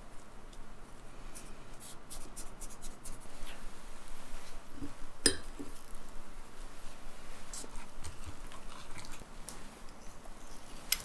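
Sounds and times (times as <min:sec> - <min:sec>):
crumbs crackling and scratching: 0:00.9 - 0:11.0.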